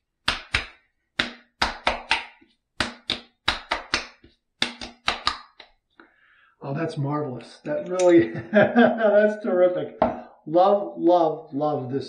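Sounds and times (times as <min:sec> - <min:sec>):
palms slapping face: 0:00.2 - 0:05.9.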